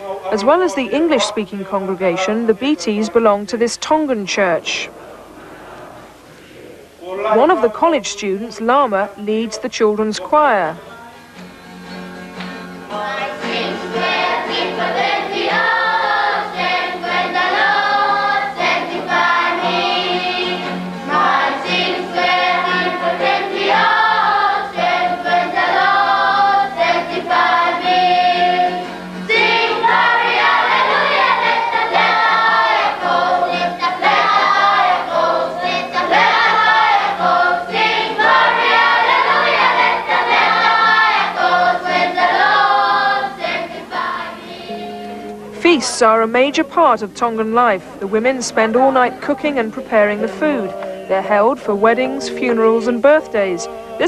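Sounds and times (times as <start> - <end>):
acoustic guitar: 0.0 - 54.0
children's choir singing: 12.9 - 45.3, 46.1 - 54.0.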